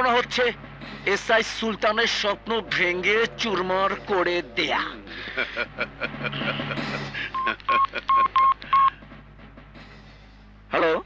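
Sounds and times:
phone keypad beeps: 0:07.4 - 0:08.9.

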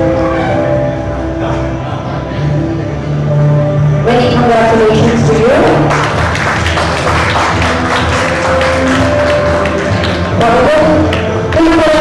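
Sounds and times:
audience clapping: 0:05.8 - 0:12.0.

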